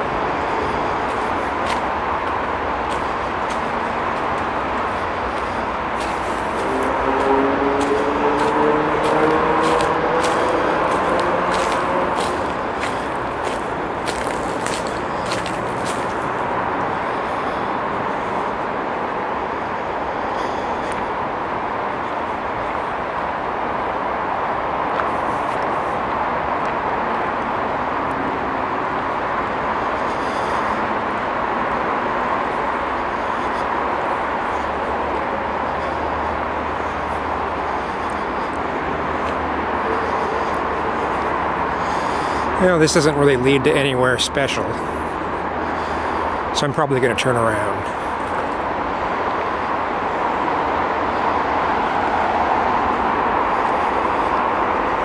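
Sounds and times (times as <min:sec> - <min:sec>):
distant road traffic: 0:00.0 - 0:55.0
footsteps crunching on dry leaves: 0:00.1 - 0:16.5.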